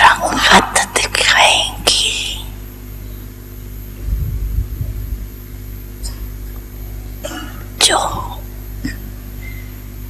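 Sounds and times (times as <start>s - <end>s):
person speaking into a microphone: 0.0s - 2.6s
steady electrical hum: 0.0s - 10.0s
low rumble on microphone: 3.6s - 7.2s.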